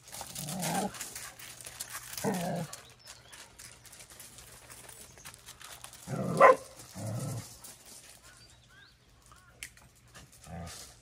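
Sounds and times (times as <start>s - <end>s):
paws scuffing on gravel: 0.0s - 11.0s.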